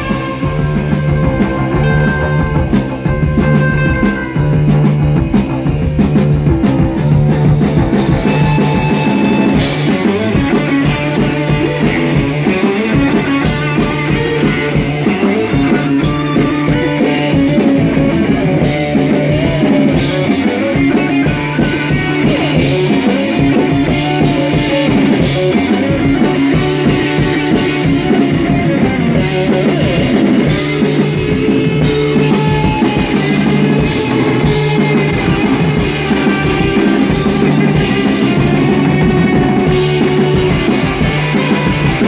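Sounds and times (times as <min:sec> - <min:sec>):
drums striking: 0:00.0 - 0:42.0
rock band playing: 0:00.0 - 0:42.0.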